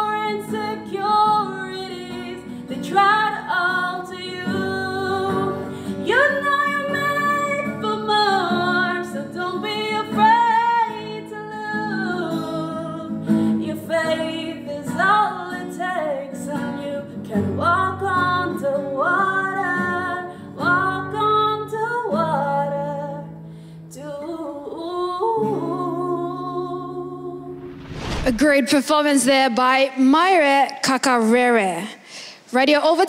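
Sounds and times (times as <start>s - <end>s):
woman singing a pop ballad: 0.0s - 27.6s
guitar accompaniment: 0.0s - 27.7s.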